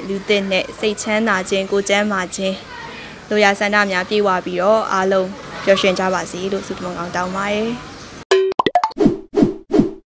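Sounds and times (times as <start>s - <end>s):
cartoon falling plops: 8.3s - 9.0s.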